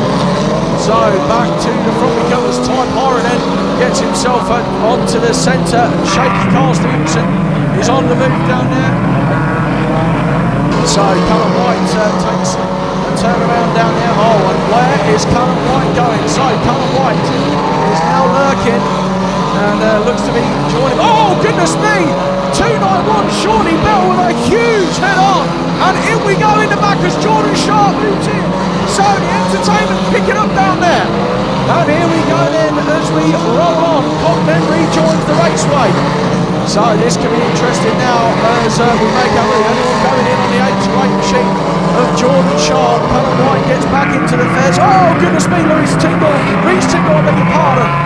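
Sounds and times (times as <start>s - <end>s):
race car engines running: 0.0s - 48.0s.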